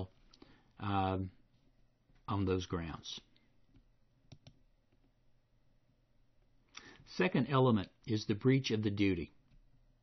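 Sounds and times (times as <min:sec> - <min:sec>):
computer mouse clicks: 0:03.7 - 0:05.1.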